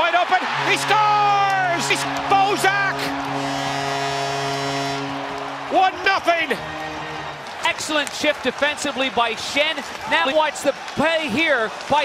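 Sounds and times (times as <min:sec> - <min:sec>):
arena crowd noise: 0:00.0 - 0:12.0
goal horn chord: 0:00.4 - 0:07.7.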